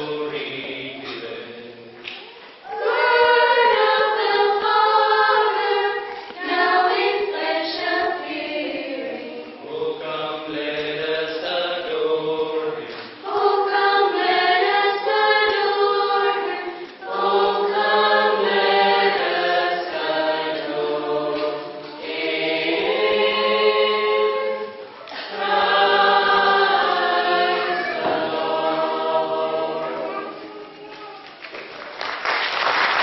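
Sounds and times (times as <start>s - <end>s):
mixed choir singing a carol: 0.0s - 30.7s.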